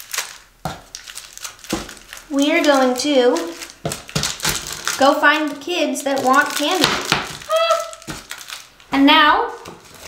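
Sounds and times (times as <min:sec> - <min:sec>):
plastic wrappers crinkling: 0:00.0 - 0:10.0.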